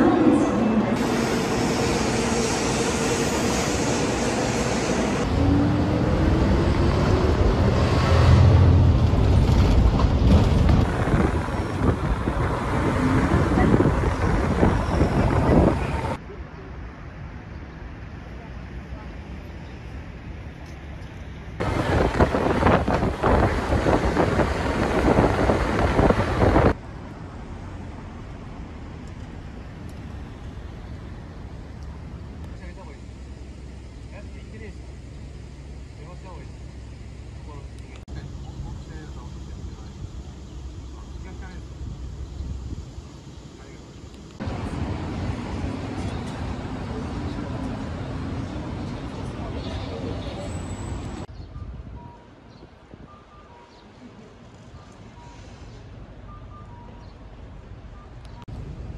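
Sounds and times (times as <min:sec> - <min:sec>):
loud rushing noise: 0:00.0 - 0:16.2, 0:21.6 - 0:26.8
passing traffic: 0:00.0 - 0:58.9.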